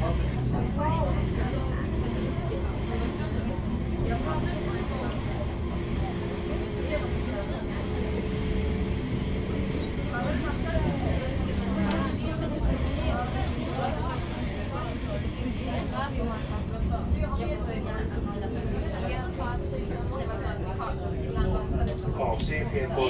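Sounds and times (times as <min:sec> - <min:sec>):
train wheels rumbling: 0:00.0 - 0:22.2
passengers talking quietly: 0:00.0 - 0:23.0.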